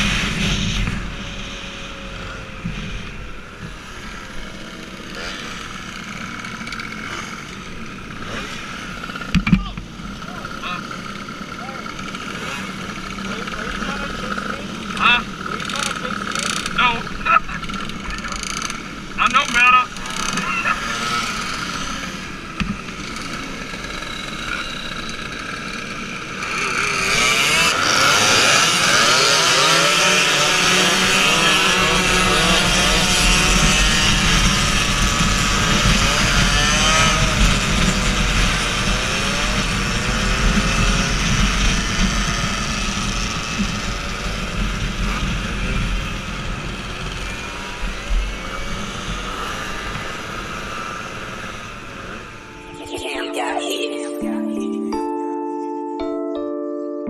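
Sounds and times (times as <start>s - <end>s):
moped engine revving: 0.0s - 53.0s.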